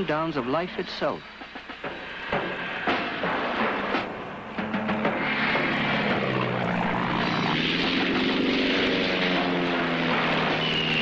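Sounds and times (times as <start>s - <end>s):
propeller aircraft engine drone: 0.0s - 11.0s.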